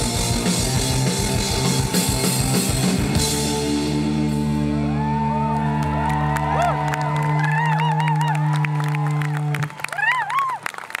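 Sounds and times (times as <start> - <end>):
rock band chord ringing: 0.0 - 5.4
crowd whistling and whooping: 4.7 - 11.0.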